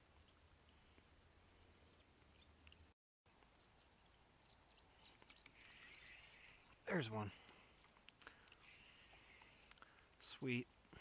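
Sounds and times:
small ticks: 0:00.0 - 0:11.0.

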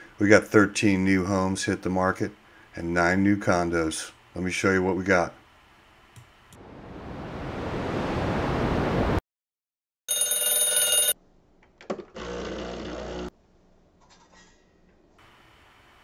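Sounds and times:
alarm clock bell ringing: 0:10.1 - 0:11.2.

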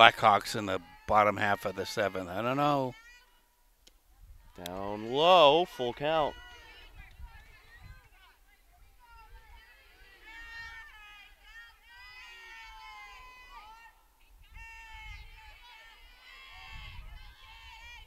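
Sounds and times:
distant players calling and cheering: 0:00.0 - 0:18.0.

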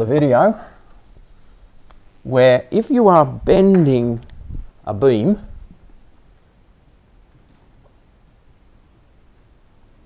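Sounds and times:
marker drawing on whiteboard: 0:06.2 - 0:10.0.

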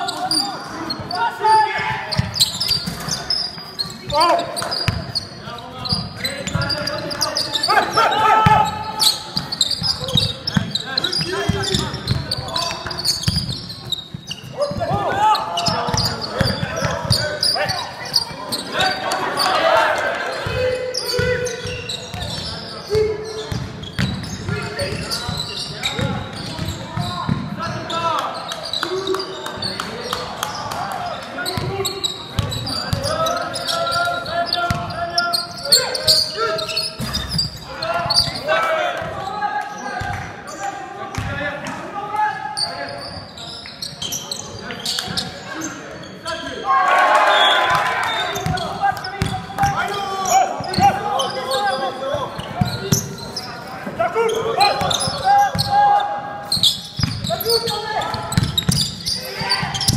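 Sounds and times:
voices echoing in a hall: 0:00.0 - 0:59.9
crowd shouting: 0:07.6 - 0:09.2, 0:17.6 - 0:21.2, 0:46.6 - 0:48.9
basketball bouncing on hardwood: 0:58.3 - 0:58.9.

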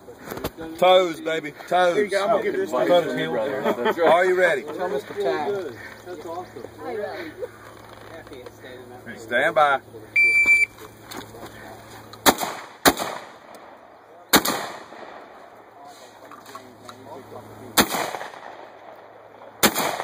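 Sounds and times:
shot timer beep: 0:10.2 - 0:10.8
shotgun shots echoing: 0:12.2 - 0:15.4, 0:17.8 - 0:20.0.

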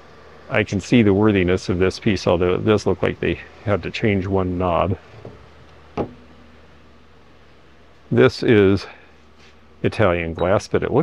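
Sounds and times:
low hum: 0:00.0 - 0:11.0
faint hiss: 0:07.8 - 0:11.0.

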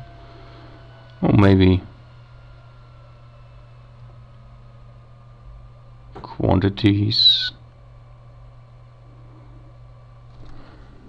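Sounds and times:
low hum and faint hiss: 0:00.0 - 0:11.0.

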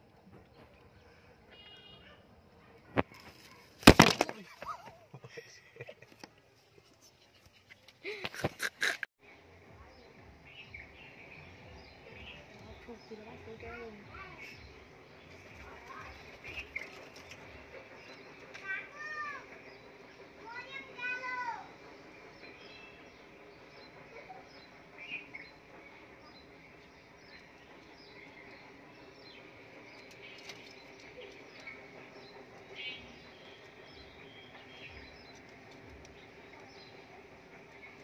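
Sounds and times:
multi-note bird call: 0:01.5 - 0:02.2
small birds chirping: 0:06.6 - 0:38.0.

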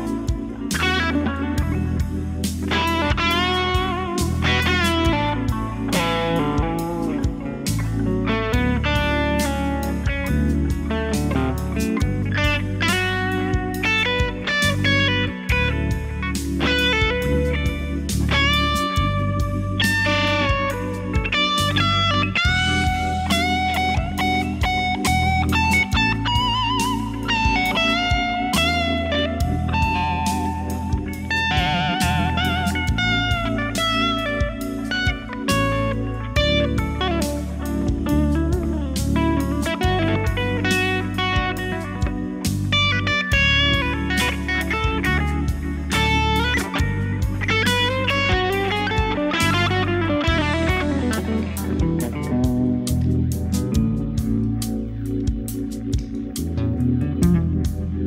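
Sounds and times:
electric guitar lead lines: 0:00.0 - 0:58.0.

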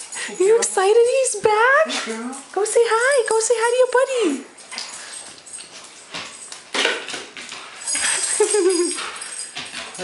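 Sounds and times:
rustling of dogs moving: 0:00.0 - 0:10.0.

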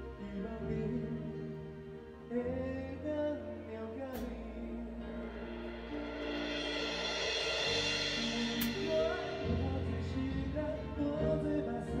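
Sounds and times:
live band playing: 0:04.9 - 0:12.0
cymbal crash: 0:05.2 - 0:10.6.

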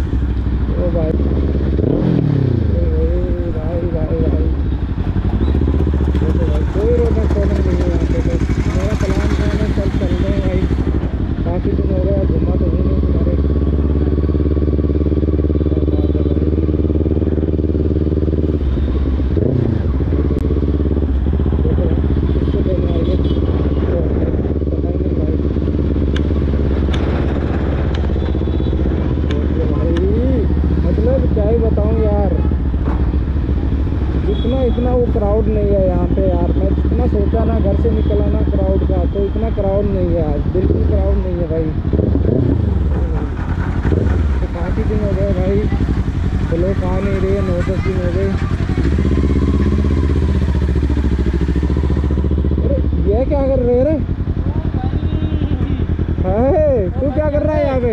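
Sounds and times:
motorcycle engine at low revs: 0:00.0 - 0:57.9.

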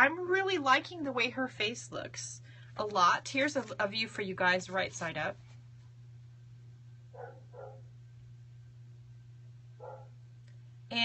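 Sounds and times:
steady low hum: 0:00.0 - 0:11.0
dog barking faintly: 0:07.2 - 0:07.9, 0:09.8 - 0:10.2.

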